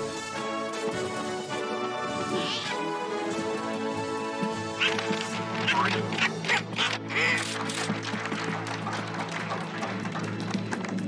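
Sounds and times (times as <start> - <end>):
cartoon background music: 0.0 - 10.3
quick high comic noises: 4.8 - 7.6.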